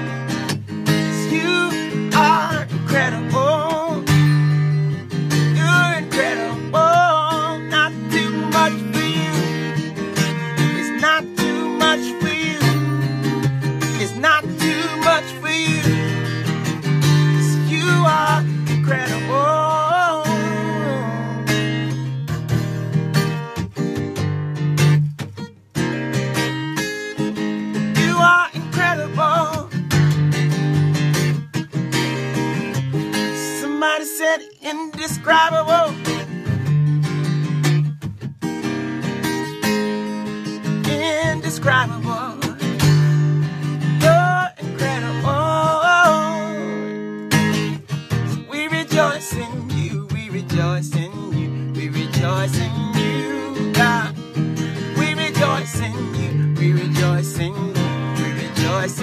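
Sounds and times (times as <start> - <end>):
acoustic guitar strumming chords: 0.0 - 59.0
man singing: 0.8 - 22.0, 27.3 - 30.0, 33.1 - 36.7, 40.4 - 47.1, 48.1 - 59.0.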